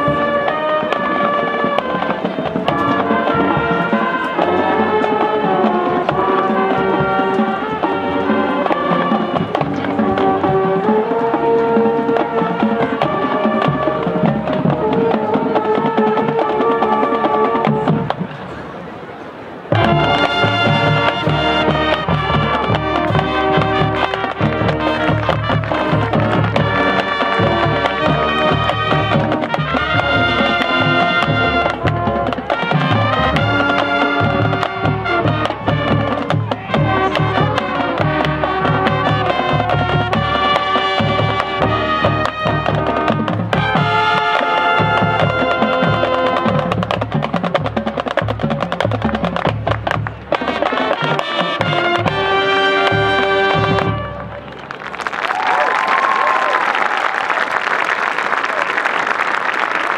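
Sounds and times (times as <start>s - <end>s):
brass instruments playing: 0.0s - 18.3s, 19.7s - 54.8s
marching drumline: 0.0s - 18.6s, 19.7s - 54.6s.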